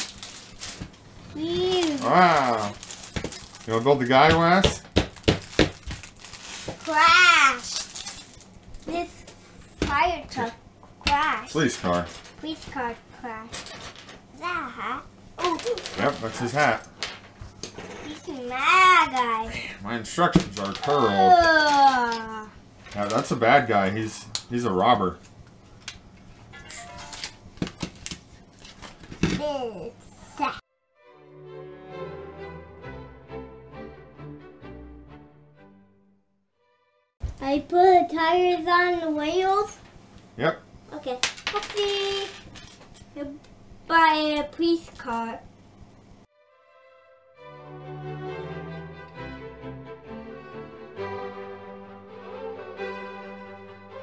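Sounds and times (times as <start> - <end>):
crinkling: 0.0 - 4.3, 5.1 - 9.4, 11.6 - 12.9, 15.4 - 18.6, 26.7 - 29.2
child vocalizing: 20.8 - 22.5.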